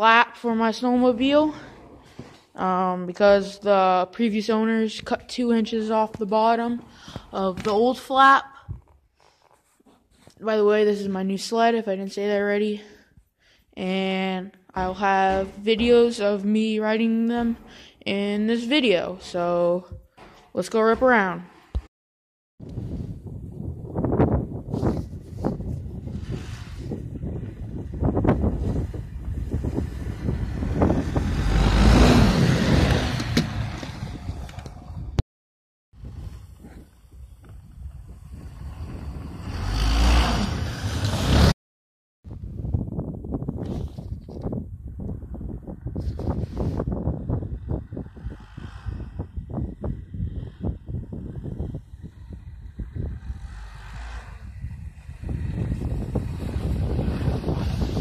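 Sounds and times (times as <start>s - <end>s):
wind buffeting microphone: 22.6s - 35.2s, 36.0s - 40.7s, 42.3s - 58.0s
snowmobile engines running: 24.7s - 35.2s, 36.3s - 41.5s, 46.0s - 58.0s.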